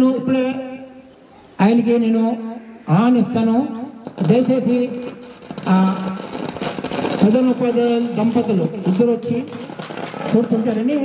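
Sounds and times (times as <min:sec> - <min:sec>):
man speaking into a microphone: 0:00.0 - 0:01.0, 0:01.6 - 0:06.2, 0:07.2 - 0:09.6, 0:10.3 - 0:11.0.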